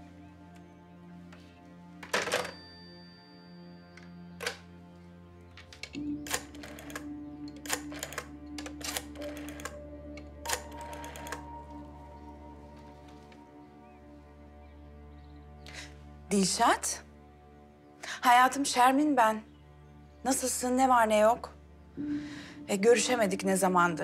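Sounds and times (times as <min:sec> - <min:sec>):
soft background music: 0:00.0 - 0:24.0
telephone handset clacking down: 0:02.0 - 0:02.6
rotary dial clicking: 0:05.8 - 0:11.5.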